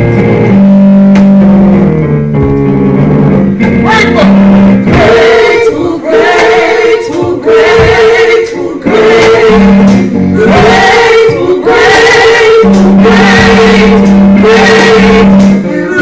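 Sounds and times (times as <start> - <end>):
gospel singing: 4.8 - 16.0.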